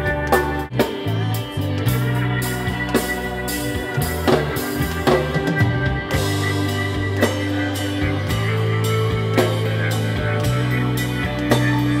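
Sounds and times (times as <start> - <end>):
rock band music: 0.0 - 12.0.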